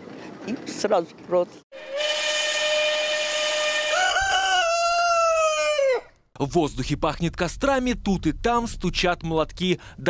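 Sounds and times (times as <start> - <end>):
train horn held note: 1.7 - 4.5
rooster crowing: 1.8 - 6.2.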